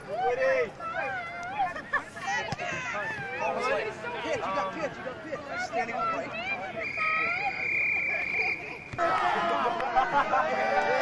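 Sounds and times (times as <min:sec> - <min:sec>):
people chattering: 0:00.0 - 0:11.0
referee's whistle blast: 0:06.8 - 0:09.0.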